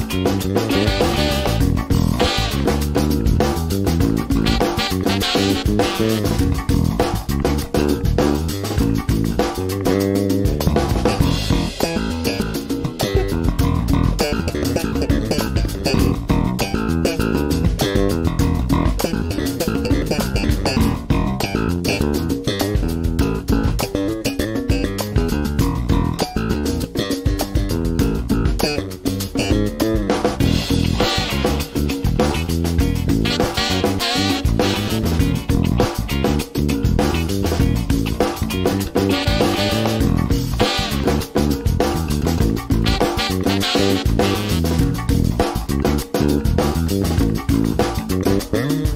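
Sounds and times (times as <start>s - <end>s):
backing track with drums: 0.0s - 48.9s
electric bass plucked fingerstyle: 0.0s - 48.9s.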